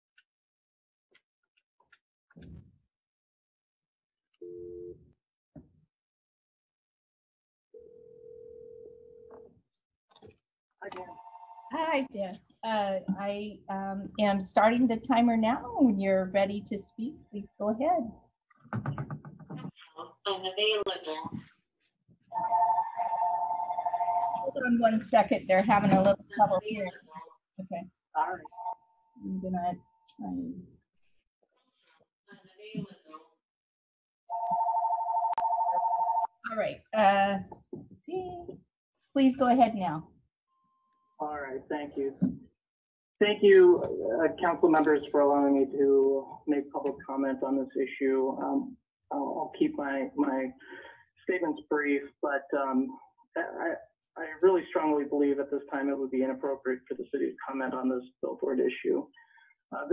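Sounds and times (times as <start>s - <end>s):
telephone ringback tone: 22.4s - 24.6s, 34.3s - 36.3s.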